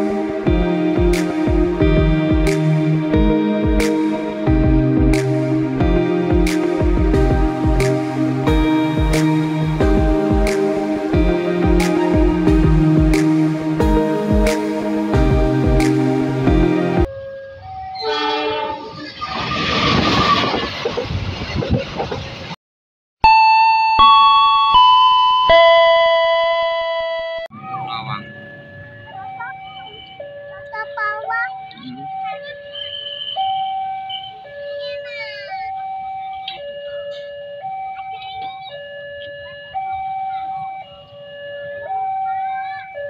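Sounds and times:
two-tone crossing alarm: 17.0 - 19.0, 23.2 - 43.0
train horn: 18.0 - 19.0
voices including children: 29.0 - 33.1, 34.2 - 40.9, 41.9 - 43.0.

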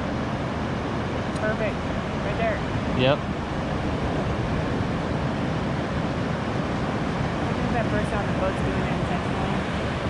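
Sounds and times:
ocean surf on a beach: 0.0 - 10.0
wind noise on microphone: 0.0 - 10.0.

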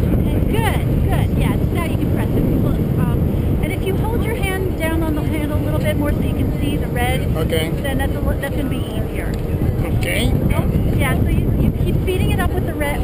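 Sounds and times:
faint voices talking: 0.0 - 13.0
wind buffeting microphone: 0.0 - 13.0.

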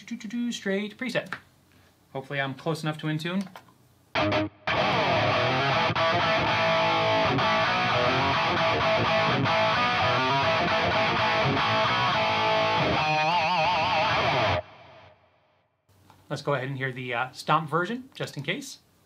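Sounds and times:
distorted electric guitar riff: 4.2 - 15.2.

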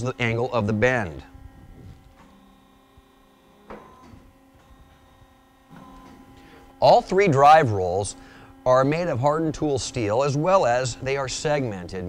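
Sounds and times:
hydraulic machine hum: 0.0 - 12.0.

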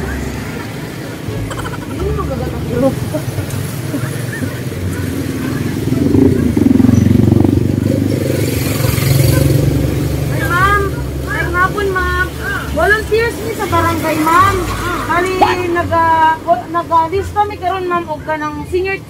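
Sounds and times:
vehicle engine passing: 0.0 - 19.0
voices: 0.0 - 19.0.

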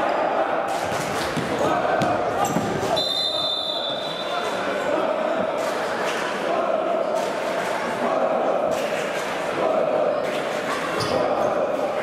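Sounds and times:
ball kicks: 1.3 - 2.9
referee's whistle: 2.9 - 4.4.

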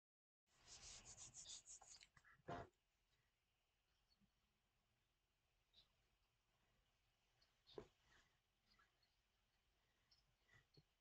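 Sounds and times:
scratchy rubbing strokes: 0.5 - 2.1.

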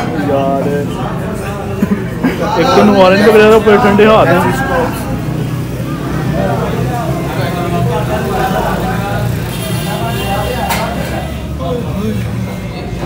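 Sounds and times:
faint background voices: 0.0 - 13.0.

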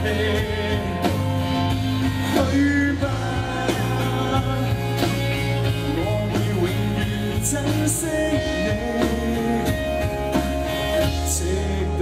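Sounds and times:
bass line: 0.0 - 12.0
drums: 0.0 - 12.0.

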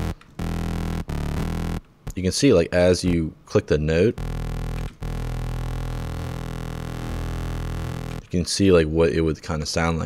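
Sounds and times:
synthesizer low bass note: 0.0 - 1.8, 4.2 - 8.2.

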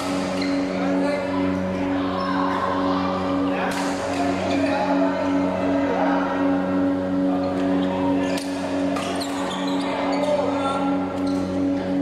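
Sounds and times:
steady low hum: 0.0 - 12.0
shoe squeaks: 0.1 - 0.8, 9.0 - 11.7.

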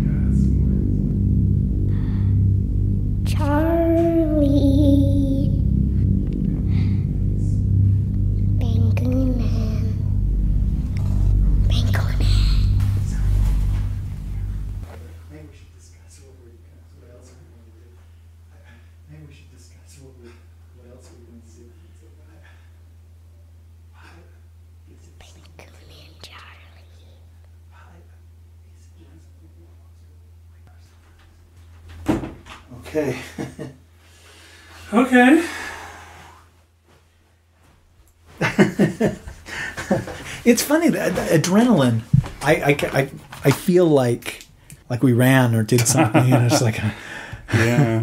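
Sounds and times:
eerie low drone music: 0.0 - 15.8
steady low hum: 0.0 - 48.0
faint whispering: 10.9 - 13.5, 25.0 - 28.2.

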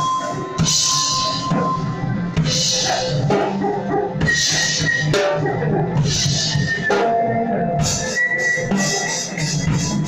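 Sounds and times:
rock drum kit: 0.0 - 10.0.

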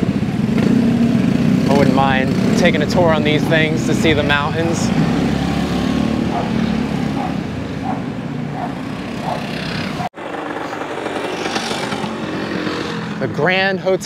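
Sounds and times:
motor scooters riding past: 0.0 - 13.5
street background: 0.0 - 14.0.

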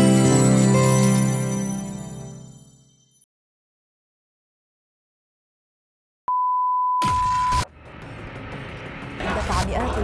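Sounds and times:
electronic beep tone: 6.3 - 7.7.

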